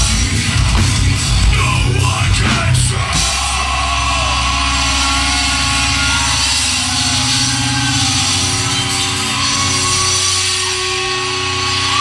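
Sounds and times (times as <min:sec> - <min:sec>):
bass droning low notes: 0:00.0 - 0:12.0
distorted electric guitars: 0:00.0 - 0:12.0.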